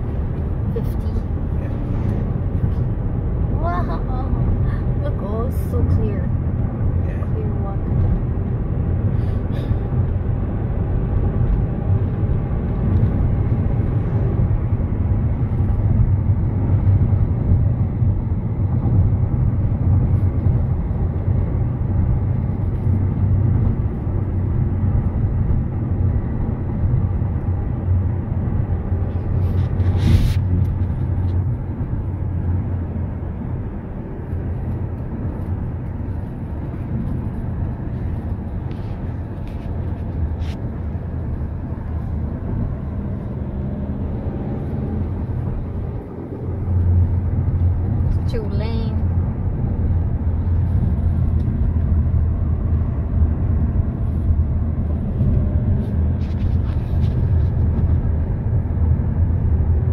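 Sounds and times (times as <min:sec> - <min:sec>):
car cabin road and engine rumble: 0:00.0 - 0:59.9.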